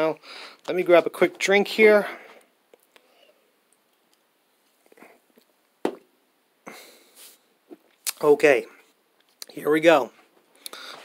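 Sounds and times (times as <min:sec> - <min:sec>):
breathy exhale: 0:10.7 - 0:11.0.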